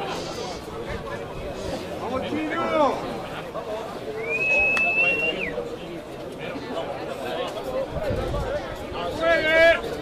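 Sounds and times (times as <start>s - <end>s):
murmur of voices: 0.0s - 10.0s
referee's whistle: 4.2s - 5.6s.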